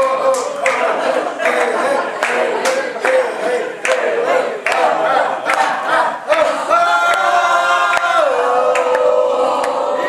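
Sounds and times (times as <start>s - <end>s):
group chanting and singing: 0.0s - 10.0s
sharp claps: 0.3s - 3.2s.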